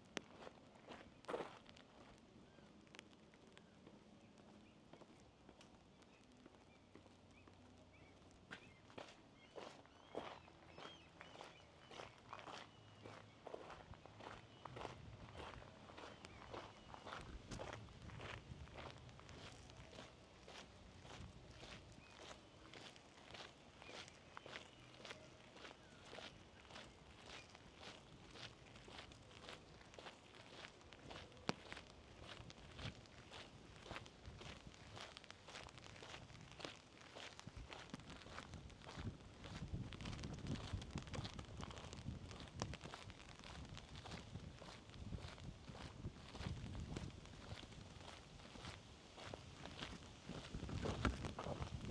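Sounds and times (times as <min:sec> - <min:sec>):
soft footsteps on path: 0:00.0 - 0:51.9.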